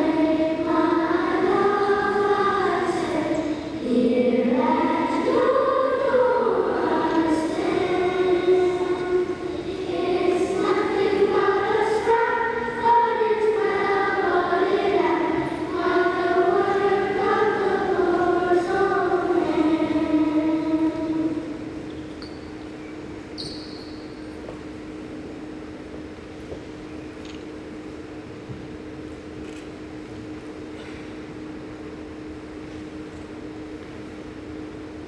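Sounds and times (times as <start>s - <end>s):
group singing in unison: 0.0s - 21.6s.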